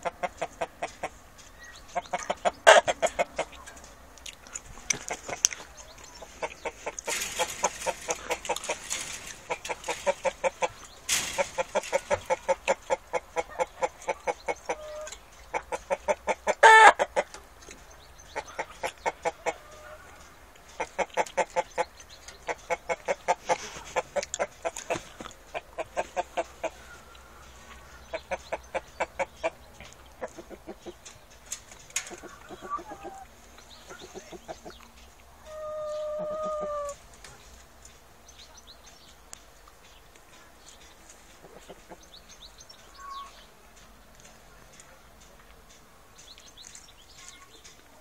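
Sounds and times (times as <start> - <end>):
chickens clucking: 0.0 - 48.0
chicken drawn-out call: 1.9 - 3.6, 5.0 - 17.3, 35.4 - 37.0.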